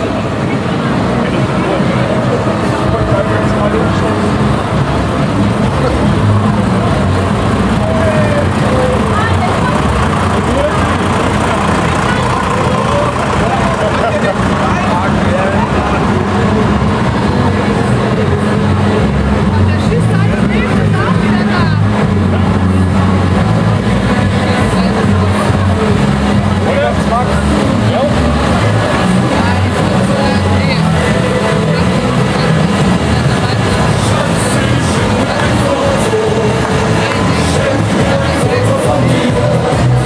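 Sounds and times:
diesel tractor engines running: 0.0 - 40.0
people's voices: 0.0 - 40.0.

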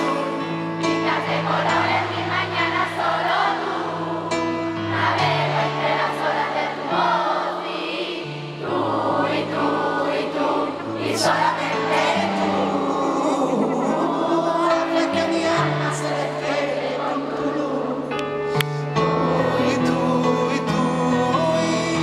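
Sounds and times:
person singing: 0.0 - 1.9, 8.7 - 22.0
keyboard and band playing: 0.0 - 6.4, 9.6 - 22.0.

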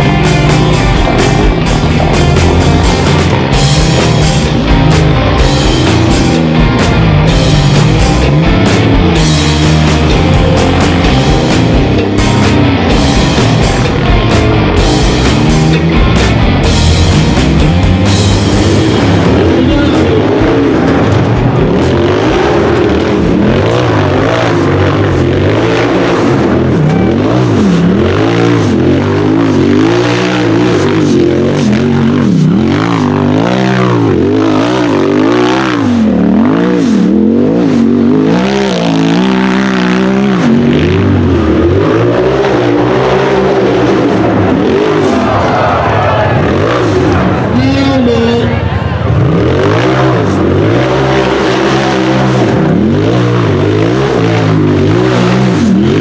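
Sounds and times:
engine revving hard: 0.0 - 56.0.

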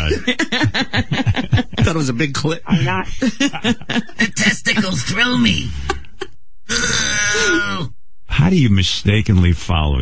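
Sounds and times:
person groaning: 6.7 - 7.9.

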